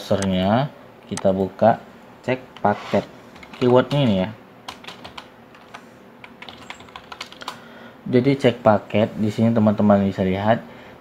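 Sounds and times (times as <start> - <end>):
computer keyboard typing: 3.4 - 7.6.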